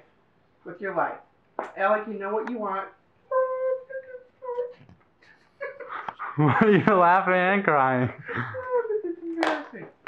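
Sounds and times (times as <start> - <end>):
woman crying: 3.3 - 4.8, 8.2 - 9.4.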